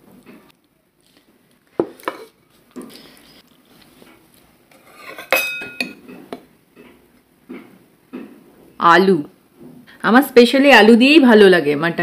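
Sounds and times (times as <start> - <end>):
spoon scraping bowl: 4.7 - 6.4.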